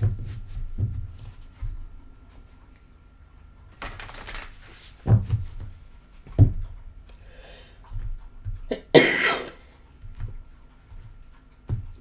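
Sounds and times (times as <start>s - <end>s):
woman coughing: 8.7s - 9.6s.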